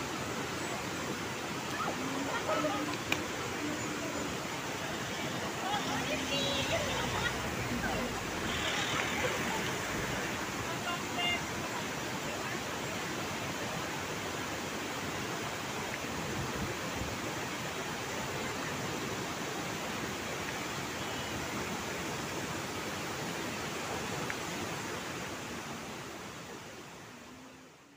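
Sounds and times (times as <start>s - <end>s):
waterfall roaring: 0.0s - 27.9s.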